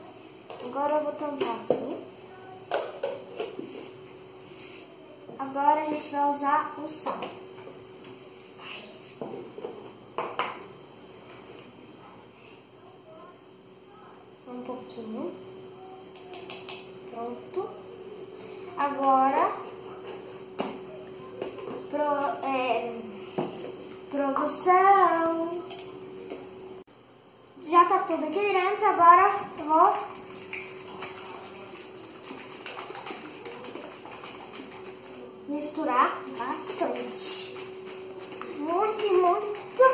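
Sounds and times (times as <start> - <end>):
egg sloshing in plastic shaker: 29.4 - 39.9.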